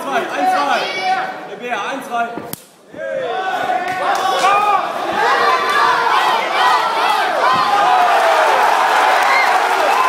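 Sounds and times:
crowd shouting and cheering: 2.8 - 10.0.

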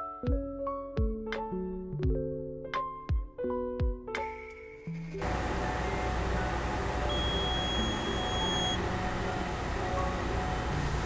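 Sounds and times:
faint music: 5.0 - 11.0.

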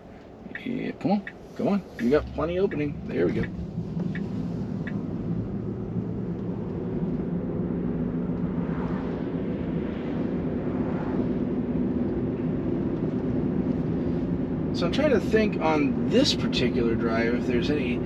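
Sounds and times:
oncoming car passing: 0.0 - 14.3
road and tyre noise in car: 0.0 - 18.0.

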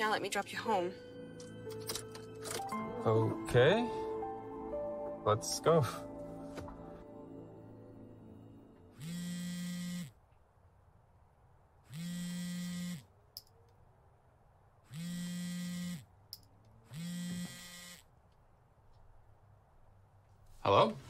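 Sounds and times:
phone vibrating on wooden table: 8.9 - 10.2, 11.9 - 13.1, 14.9 - 16.1, 16.9 - 18.1.

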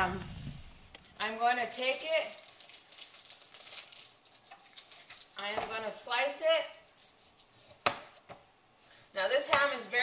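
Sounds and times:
plastic wrapping crinkling: 1.6 - 5.5.

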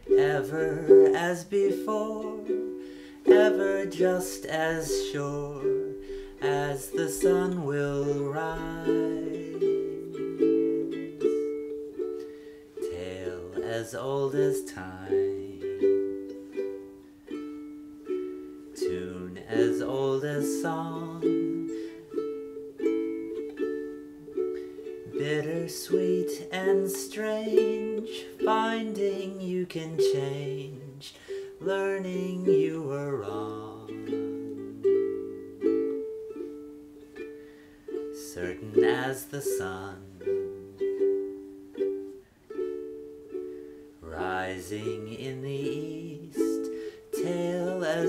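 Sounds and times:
person singing: 0.0 - 48.0
ukulele strumming: 0.0 - 48.0.

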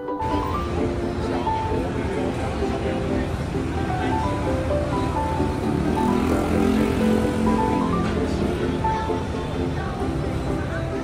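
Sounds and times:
light background melody: 0.0 - 11.0.

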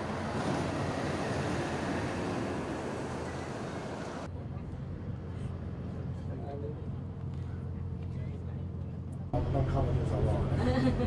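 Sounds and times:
bus engine rumble: 0.0 - 11.0.

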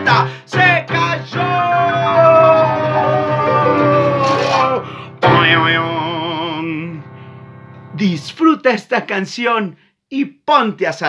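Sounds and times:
guitar accompaniment: 0.0 - 5.7
person singing children's song: 0.0 - 7.0.

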